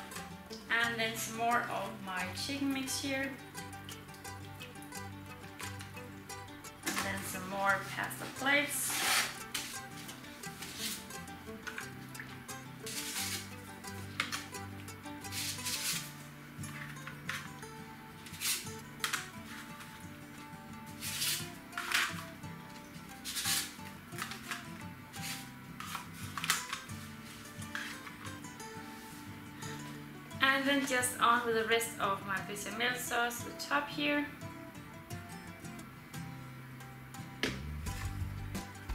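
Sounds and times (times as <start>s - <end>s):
background music with held chords: 0.0s - 38.9s.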